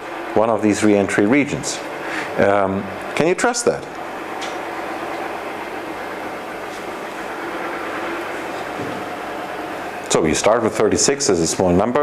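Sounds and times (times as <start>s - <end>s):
faint even hum: 0.0s - 12.0s.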